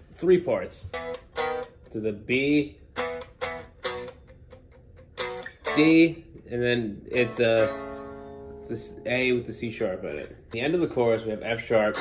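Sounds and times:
electric guitar chords strummed: 0.9s - 2.0s, 2.9s - 10.6s.

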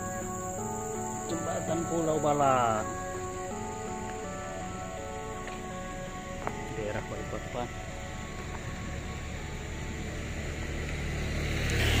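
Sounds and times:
road vehicle rumble: 0.0s - 12.0s.

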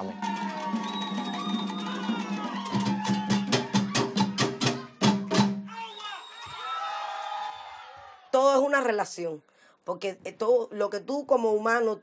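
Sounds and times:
drum and wood strikes: 0.2s - 5.7s.

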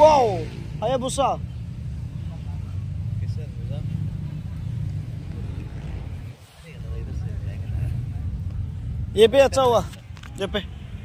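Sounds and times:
wind buffeting microphone: 4.0s - 11.0s.

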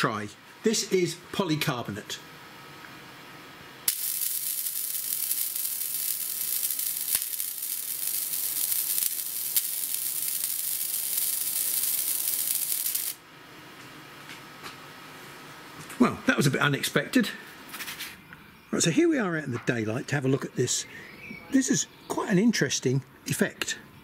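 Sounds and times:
laser hissing: 3.9s - 13.2s.

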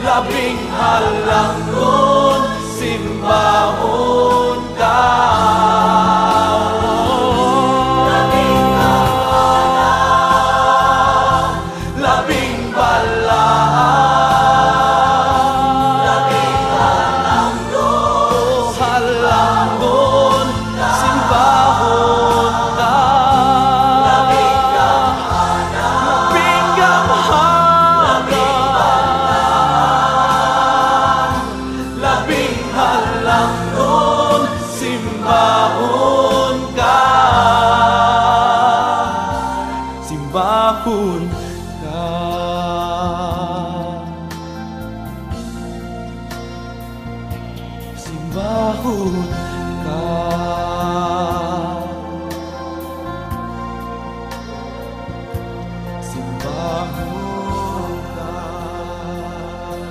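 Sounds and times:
choir singing: 0.0s - 59.9s
instrumental accompaniment: 0.0s - 59.9s.

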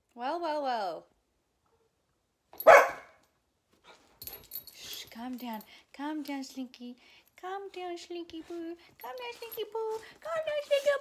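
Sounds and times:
small dog barking: 2.6s - 3.2s
faint rustling: 3.7s - 11.0s.

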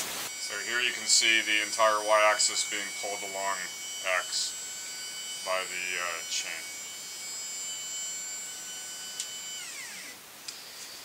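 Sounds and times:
stepper motor whining: 0.3s - 11.0s.

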